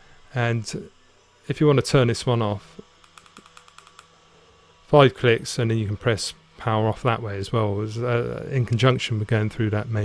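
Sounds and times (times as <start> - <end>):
vape button clicks: 3.0 - 4.1.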